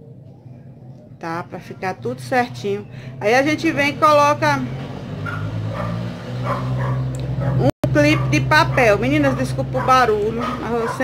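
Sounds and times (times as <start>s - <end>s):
dog barking faintly: 5.2s - 11.0s.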